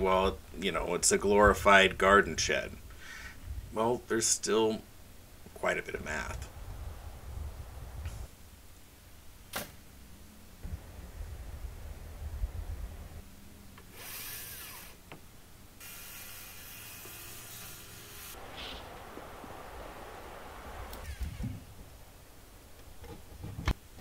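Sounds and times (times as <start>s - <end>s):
power drill running: 13.9s - 15.0s, 15.8s - 18.4s.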